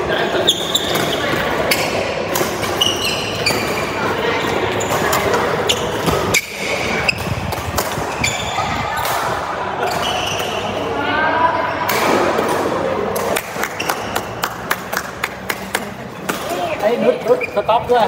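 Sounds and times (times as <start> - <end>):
people talking: 3.8 - 7.1, 15.9 - 18.0.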